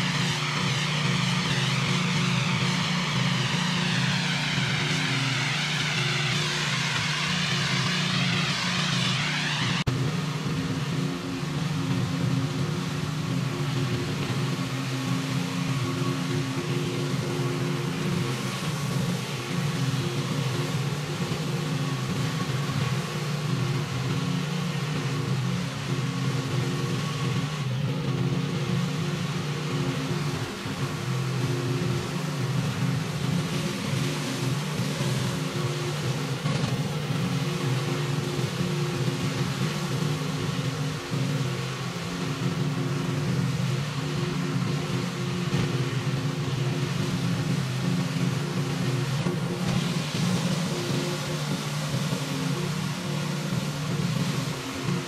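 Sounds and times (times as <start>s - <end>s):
high-pressure water hiss: 0.0s - 55.0s
pressure washer engine running: 0.0s - 55.0s.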